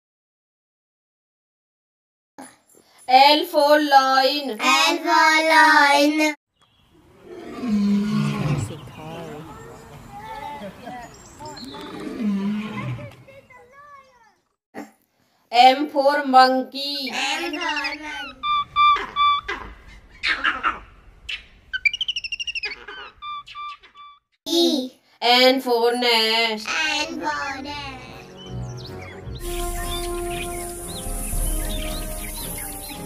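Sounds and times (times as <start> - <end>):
lion roaring: 7.1 - 9.4, 11.7 - 13.1
bird trilling: 17.4 - 24.2, 28.2 - 33.0
bird whistled notes: 18.4 - 19.5, 28.4 - 33.0.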